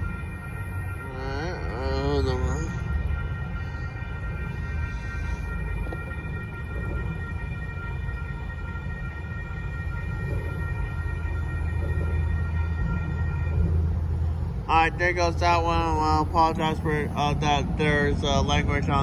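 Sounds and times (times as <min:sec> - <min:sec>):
freight train rumble: 0:00.0 - 0:19.0
high-pitched whine: 0:00.0 - 0:19.0.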